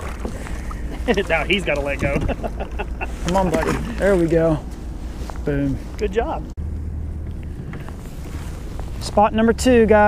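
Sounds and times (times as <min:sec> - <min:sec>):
steady low rumble: 0:00.0 - 0:10.0
jacket rustling: 0:07.9 - 0:09.1.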